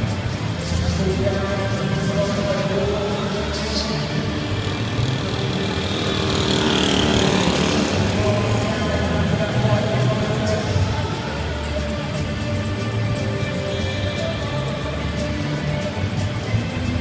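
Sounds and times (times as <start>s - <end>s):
music over loudspeakers: 0.0s - 17.0s
voices over loudspeakers: 0.0s - 17.0s.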